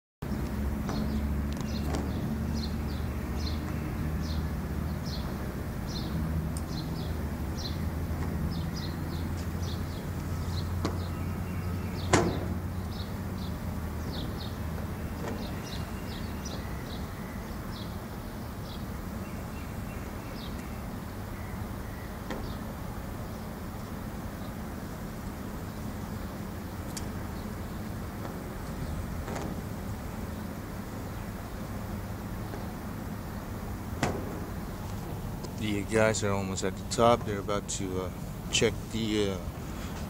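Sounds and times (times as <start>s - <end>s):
steady low hum: 0.2s - 40.0s.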